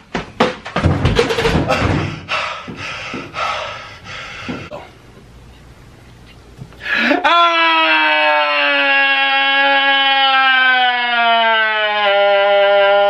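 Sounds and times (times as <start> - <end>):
man wailing: 7.0 - 13.0.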